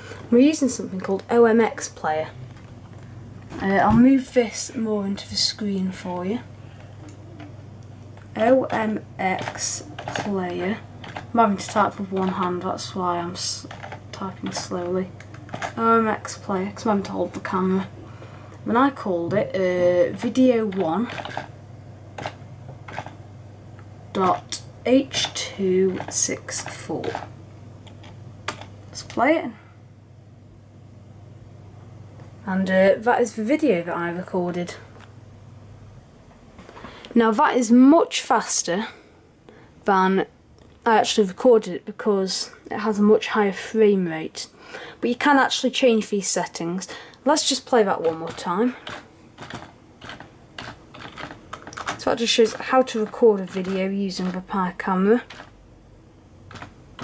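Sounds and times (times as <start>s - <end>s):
faint low hum: 0.0s - 57.0s
computer keyboard keystrokes: 8.2s - 12.6s, 13.6s - 15.8s, 22.2s - 23.2s, 25.2s - 29.2s, 48.0s - 54.4s, 55.2s - 55.6s, 56.5s - 57.0s.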